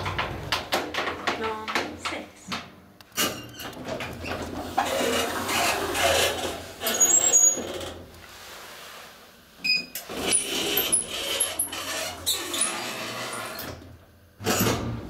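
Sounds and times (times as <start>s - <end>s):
elevator rubbing and scraping: 3.5s - 8.6s, 10.0s - 13.8s.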